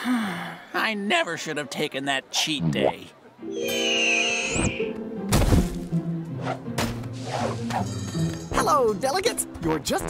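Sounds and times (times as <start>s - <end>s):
high warbling tone: 3.5s - 4.9s
thud: 5.3s - 5.8s.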